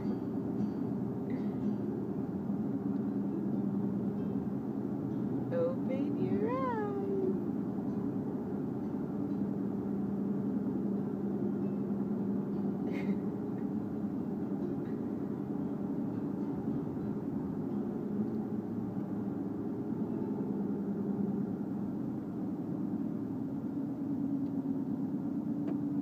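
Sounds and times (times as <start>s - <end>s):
car cabin road noise: 0.0s - 26.0s.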